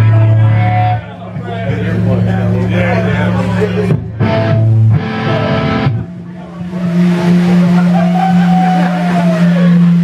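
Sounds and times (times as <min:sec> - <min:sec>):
crowd noise: 0:00.0 - 0:10.0
amplifier low tone: 0:01.8 - 0:10.0.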